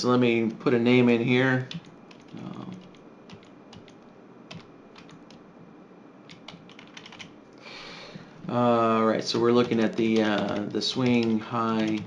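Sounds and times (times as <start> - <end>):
quiet keyboard keystrokes: 1.6 - 5.4, 6.3 - 7.3, 9.2 - 12.0.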